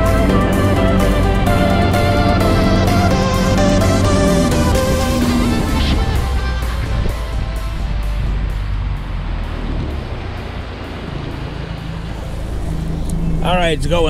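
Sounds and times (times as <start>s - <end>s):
background music: 0.0s - 14.0s
outboard motor at high throttle: 0.0s - 14.0s
water rushing: 0.0s - 14.0s
wind rushing: 0.0s - 14.0s.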